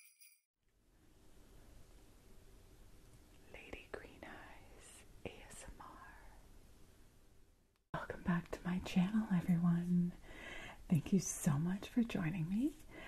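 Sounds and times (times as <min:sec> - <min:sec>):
woman whispering: 0:03.4 - 0:06.4, 0:08.0 - 0:10.2, 0:10.9 - 0:12.8
woman speaking softly: 0:08.0 - 0:10.2, 0:10.9 - 0:12.8.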